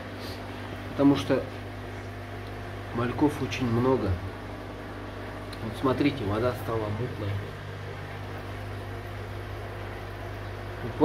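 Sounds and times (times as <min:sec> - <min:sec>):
aquarium air pump humming: 0:00.0 - 0:11.0.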